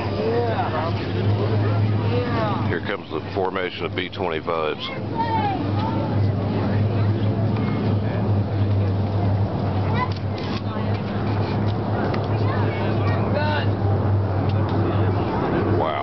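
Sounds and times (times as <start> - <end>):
crowd voices: 0.0 - 16.0
piston aircraft engines droning: 0.0 - 16.0.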